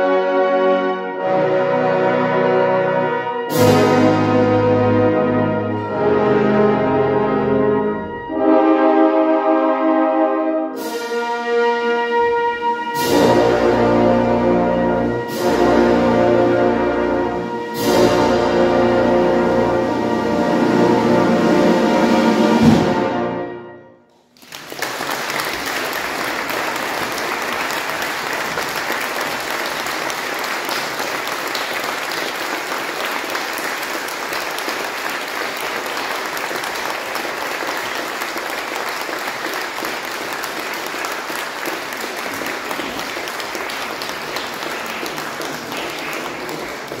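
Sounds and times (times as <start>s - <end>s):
audience applauding: 24.1s - 47.0s.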